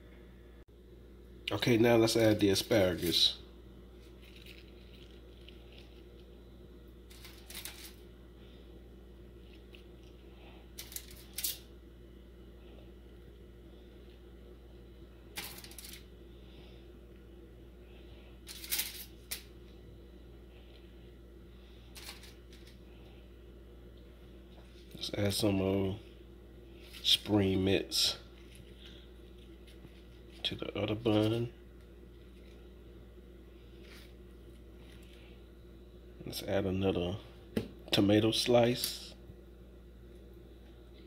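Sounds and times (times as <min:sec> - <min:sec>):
steady low hum: 0:00.0 - 0:41.0
food rustling on a plate: 0:04.0 - 0:06.4, 0:07.1 - 0:08.1, 0:10.8 - 0:11.6, 0:15.4 - 0:16.1, 0:18.4 - 0:19.6, 0:21.9 - 0:22.8, 0:28.2 - 0:30.6, 0:33.6 - 0:35.3.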